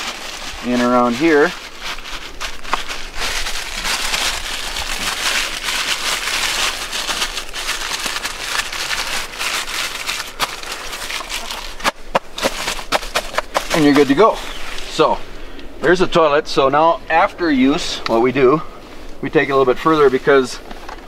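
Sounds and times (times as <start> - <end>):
plastic bag crinkling: 0.0 - 14.3.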